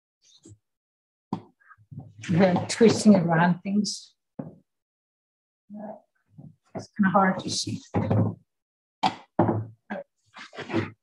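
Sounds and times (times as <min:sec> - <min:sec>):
wooden board bumping on table: 0:07.9 - 0:08.4, 0:09.0 - 0:09.8.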